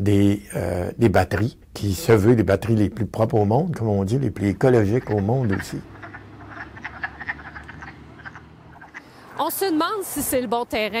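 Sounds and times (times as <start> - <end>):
low steady hum: 0.0 - 11.0
frogs croaking: 4.1 - 10.7.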